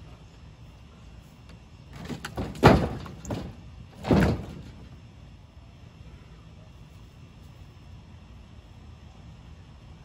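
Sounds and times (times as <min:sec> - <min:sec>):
logs thudding onto wooden deck: 0:01.9 - 0:05.0.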